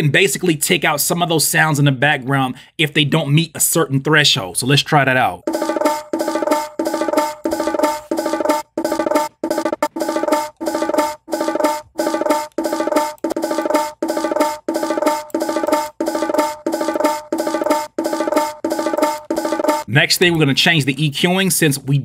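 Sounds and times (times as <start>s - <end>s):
gated bongo hits: 5.4s - 19.9s.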